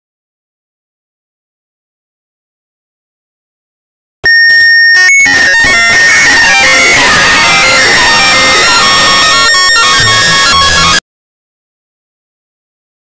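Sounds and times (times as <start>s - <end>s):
loud distorted music: 5.0s - 11.0s.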